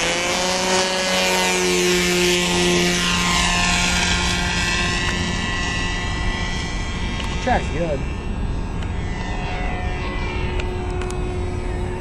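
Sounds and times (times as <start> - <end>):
model plane engine buzzing: 0.0 - 12.0.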